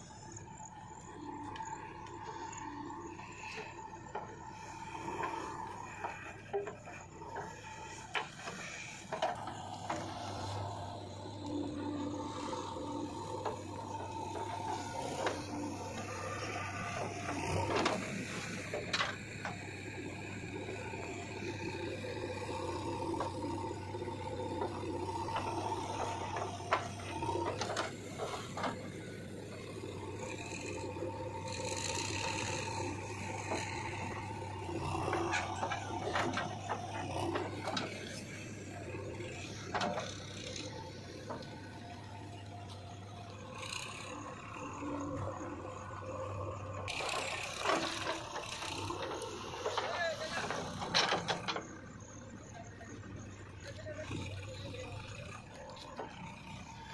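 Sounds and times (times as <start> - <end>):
diesel engine running: 0.0 - 56.9.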